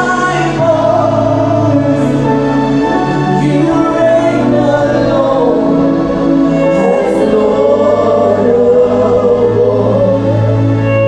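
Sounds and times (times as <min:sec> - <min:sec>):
live instrumental backing: 0:00.0 - 0:11.0
voices singing along: 0:00.0 - 0:11.0
woman singing lead: 0:00.0 - 0:11.0.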